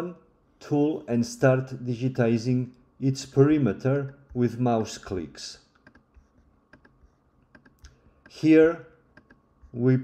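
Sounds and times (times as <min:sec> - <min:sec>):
computer mouse clicks: 0:05.7 - 0:08.4, 0:09.1 - 0:09.8.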